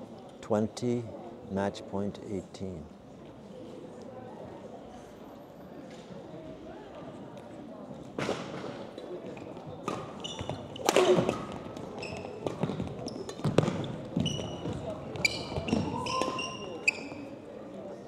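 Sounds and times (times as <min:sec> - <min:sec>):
sneakers squeaking on floor: 0:09.8 - 0:17.4.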